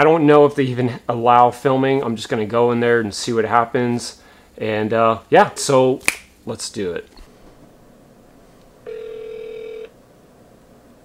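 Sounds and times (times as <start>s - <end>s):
phone ringback tone: 8.8s - 10.0s.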